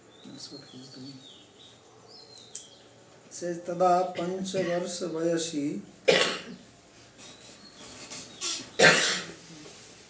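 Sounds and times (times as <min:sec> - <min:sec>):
man coughing: 0:04.2 - 0:04.9, 0:06.1 - 0:06.6, 0:08.8 - 0:09.3.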